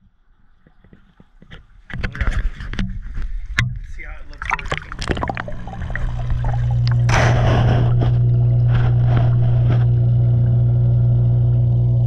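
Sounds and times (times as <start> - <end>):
water pumps humming underwater: 0.0 - 12.0.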